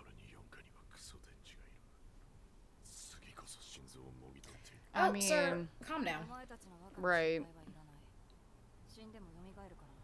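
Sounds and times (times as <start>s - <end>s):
faint whispery speech: 0.0s - 1.8s, 2.8s - 4.7s.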